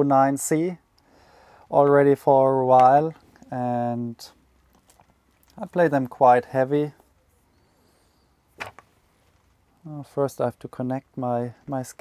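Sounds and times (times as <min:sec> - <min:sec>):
rubber sheet slapping on table: 0:08.6 - 0:08.9.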